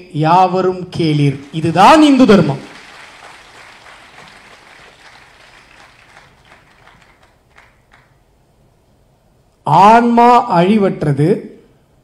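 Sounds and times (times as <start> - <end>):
faint audience applause: 1.4 - 8.2.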